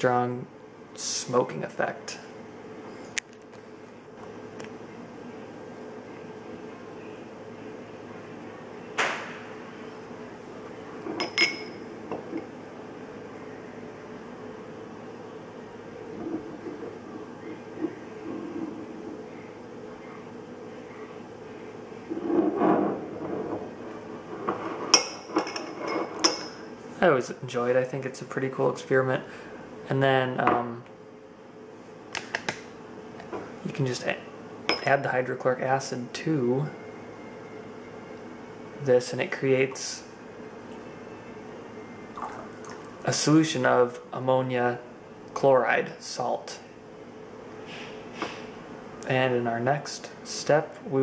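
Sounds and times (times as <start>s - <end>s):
faint steady hum: 0.0s - 51.0s.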